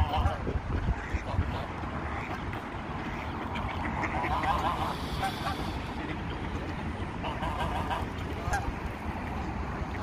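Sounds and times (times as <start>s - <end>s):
ducks and geese calling: 0.0s - 10.0s.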